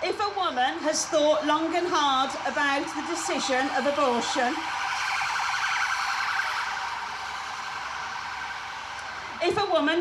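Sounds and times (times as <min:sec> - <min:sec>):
siren warbling: 0:00.1 - 0:09.8.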